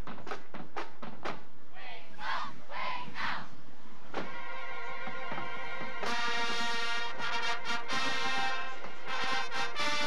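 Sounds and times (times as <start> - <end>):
marching band brass chord: 4.2 - 10.0.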